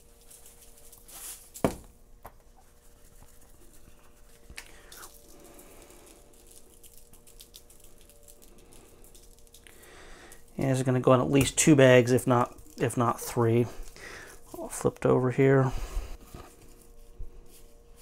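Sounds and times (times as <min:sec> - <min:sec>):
faint steady hum: 0:00.0 - 0:18.0
seasoning pattering onto meat: 0:02.5 - 0:14.0.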